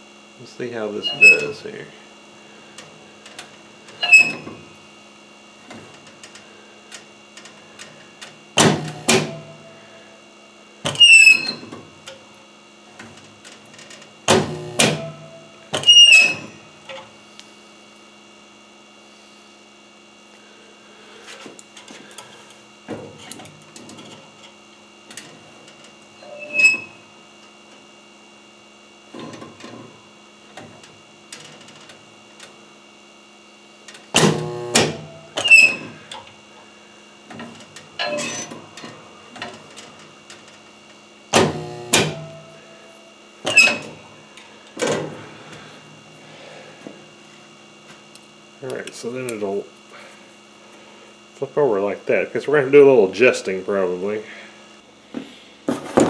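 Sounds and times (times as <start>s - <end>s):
steady electrical hum: 0.0s - 56.0s
high squeak: 1.0s - 1.6s, 4.0s - 4.5s, 11.0s - 11.6s, 15.8s - 16.6s, 26.2s - 27.0s, 35.4s - 35.9s, 38.0s - 38.5s
spot welder bursts: 7.6s - 10.2s, 14.2s - 17.4s, 34.1s - 36.2s, 41.3s - 44.0s.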